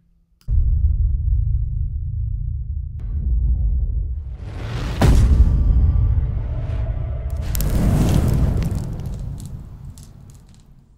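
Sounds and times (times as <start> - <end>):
deep boom and rumble: 0.6 - 10.7
scattered crackles: 7.3 - 10.9.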